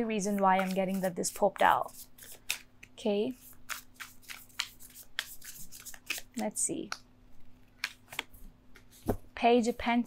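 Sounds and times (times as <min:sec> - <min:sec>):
cards being shuffled: 0:00.3 - 0:06.4.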